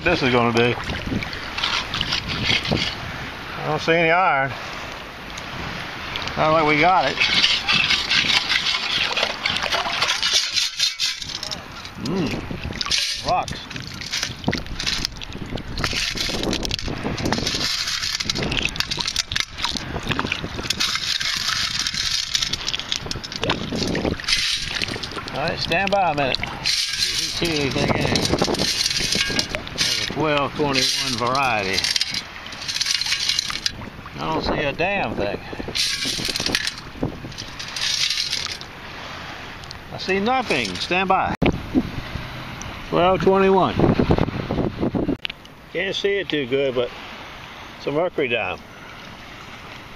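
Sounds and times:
water sloshing: 0:00.0 - 0:41.4
pebbles rattling in metal scoop: 0:07.1 - 0:11.9, 0:12.8 - 0:15.1, 0:15.8 - 0:19.8, 0:20.5 - 0:25.9, 0:26.6 - 0:33.8, 0:35.8 - 0:38.6.

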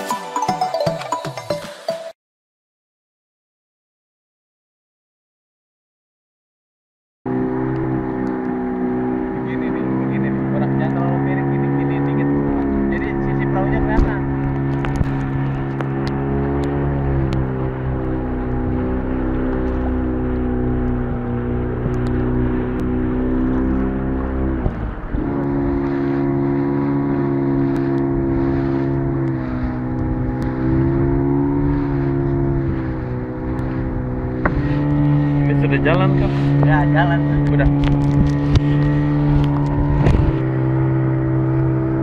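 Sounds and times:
outboard motor running: 0:07.3 - 0:42.0.

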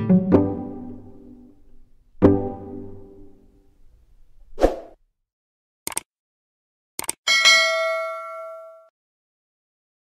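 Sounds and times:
mouse clicks: 0:07.0 - 0:07.2
notification bell ding: 0:07.3 - 0:08.9.

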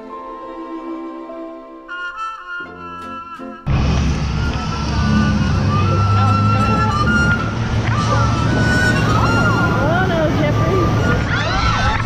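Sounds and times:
people's voices: 0:04.5 - 0:12.0.

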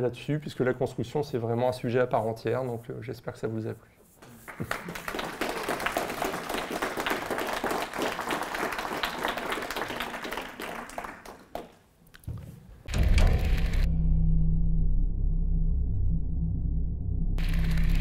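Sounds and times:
audience applauding: 0:04.4 - 0:11.8, 0:17.4 - 0:18.0.

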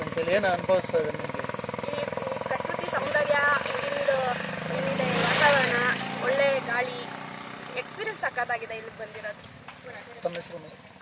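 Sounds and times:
idling engine throb: 0:00.0 - 0:09.2
woman speaking: 0:01.8 - 0:10.2.

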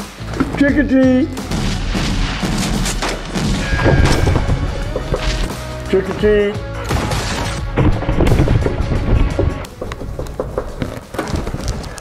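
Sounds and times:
dramatic soundtrack music: 0:00.0 - 0:11.7
sharp bangs and thuds: 0:01.4 - 0:11.7.

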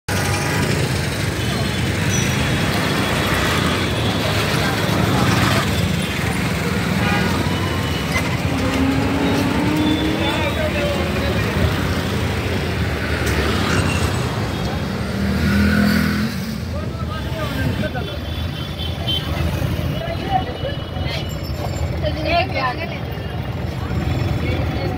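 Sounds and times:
passing vehicles: 0:00.1 - 0:24.9
scattered voices outside: 0:00.1 - 0:24.9.

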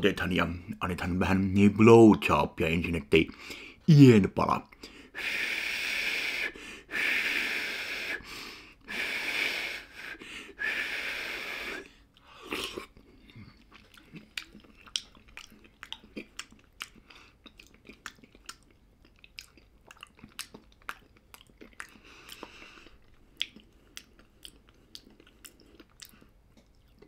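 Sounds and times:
short breath: 0:03.4 - 0:03.8, 0:04.8 - 0:12.5
person chewing wetly: 0:12.1 - 0:27.0.

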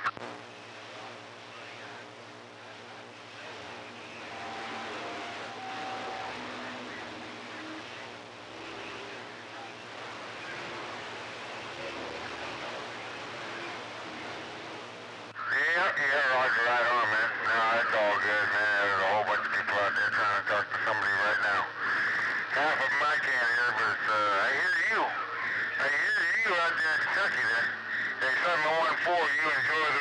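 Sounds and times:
radio static hiss: 0:00.0 - 0:30.0
weak distant radio stations: 0:00.0 - 0:30.0.

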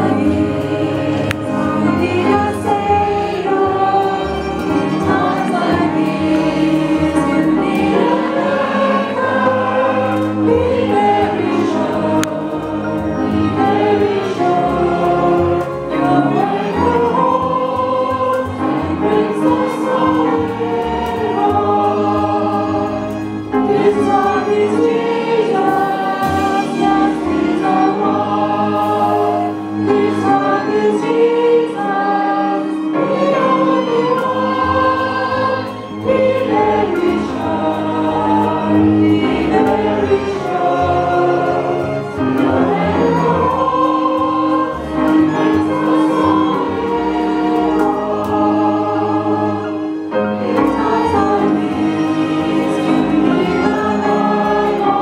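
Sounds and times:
choir singing: 0:00.0 - 0:55.0
hymn on clarinet and strings: 0:00.0 - 0:55.0.

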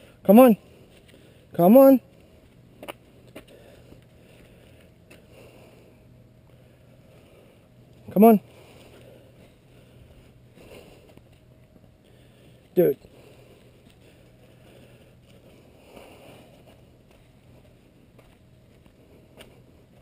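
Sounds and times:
low hum: 0:00.0 - 0:20.0
man calling out: 0:00.2 - 0:00.6, 0:01.5 - 0:02.1, 0:08.1 - 0:08.5, 0:12.8 - 0:13.0.

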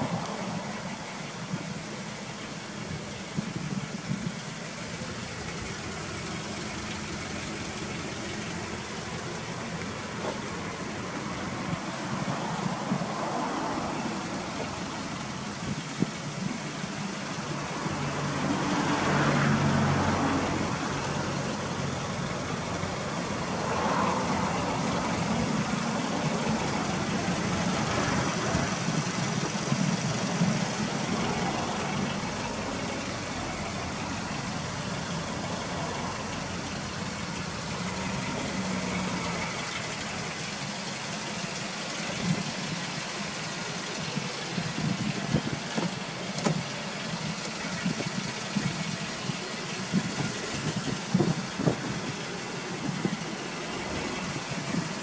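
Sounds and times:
minivan engine idling: 0:00.0 - 0:55.0.

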